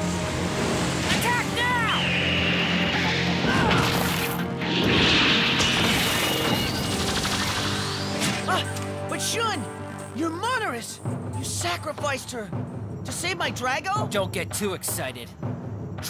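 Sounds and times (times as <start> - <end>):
dramatic background music: 0.0 - 16.0.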